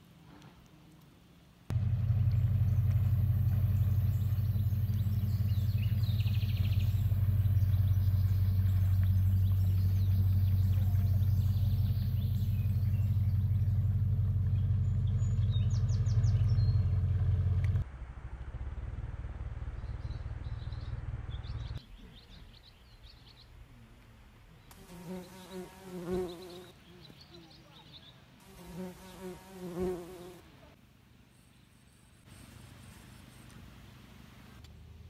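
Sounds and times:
quiet outdoor background: 0.0s - 35.0s
motorboat engine running: 1.7s - 17.8s.

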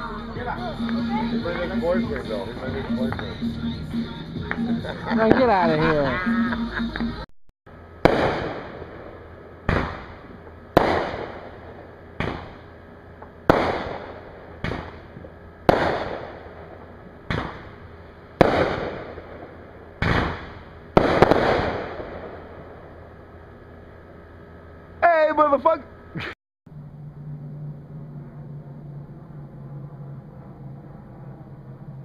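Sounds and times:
fireworks booming: 0.0s - 7.2s, 7.8s - 24.1s.

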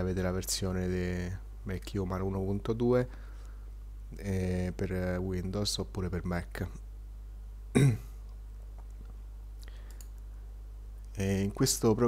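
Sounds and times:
steady low hum: 0.0s - 12.0s
man coughing: 7.8s - 8.2s
faint clicks: 8.2s - 10.3s.

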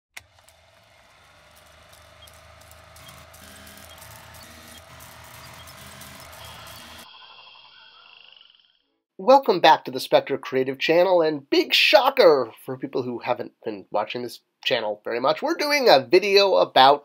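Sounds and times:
crackle and pops: 0.1s - 7.1s
film projector whirring: 0.1s - 8.7s.

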